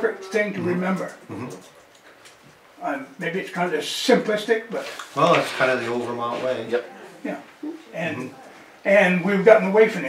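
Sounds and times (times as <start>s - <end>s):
man talking: 0.0s - 1.6s, 2.8s - 10.0s.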